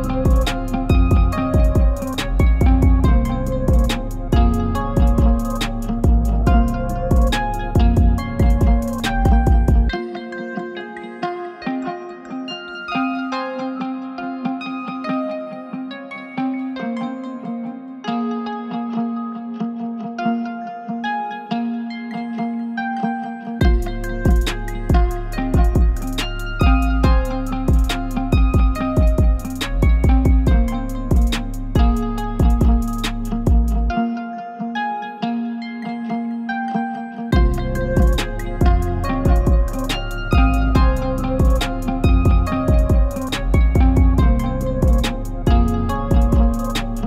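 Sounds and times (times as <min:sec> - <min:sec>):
plucked guitar melody: 0:00.0 - 0:47.0.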